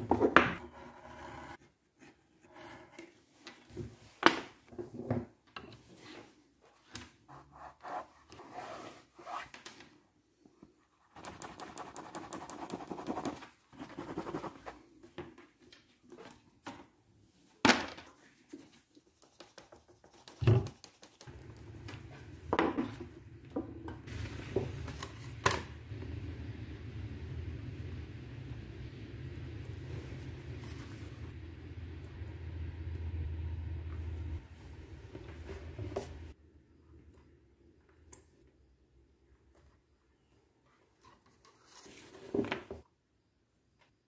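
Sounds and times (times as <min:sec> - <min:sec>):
steady low hum: 0:21.3 - 0:36.4.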